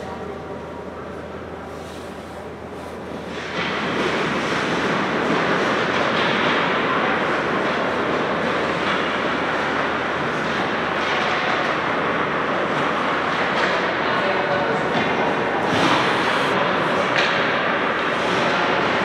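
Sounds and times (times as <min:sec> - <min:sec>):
hockey sticks and pucks clattering: 0:02.8 - 0:19.0
skate blades scraping ice: 0:15.6 - 0:17.4.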